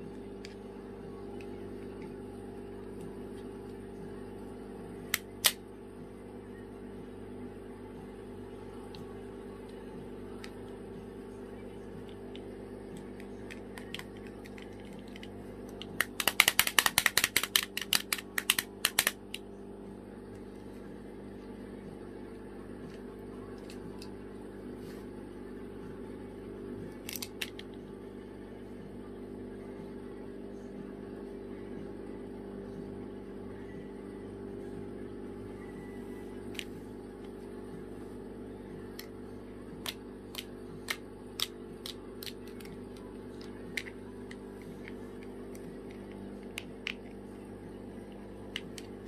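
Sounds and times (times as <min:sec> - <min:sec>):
steady low hum: 0:00.0 - 0:49.0
plastic clapper toy clacking: 0:16.0 - 0:19.2.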